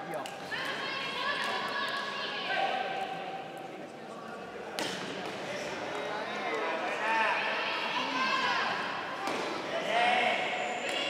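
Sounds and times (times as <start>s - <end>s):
background voices in a hall: 0.0s - 11.0s.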